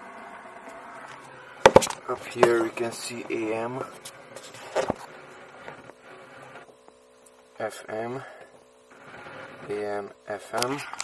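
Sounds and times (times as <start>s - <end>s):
faint electrical hum and hiss: 0.0s - 11.0s.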